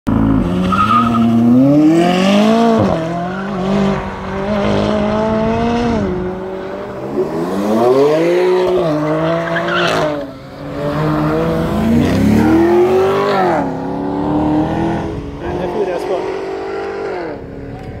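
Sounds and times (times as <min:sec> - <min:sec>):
car engine accelerating hard: 0:00.1 - 0:18.0.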